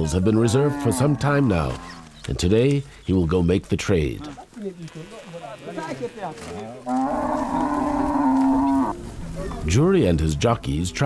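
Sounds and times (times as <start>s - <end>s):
cow mooing: 0.4s - 2.1s, 6.9s - 9.0s.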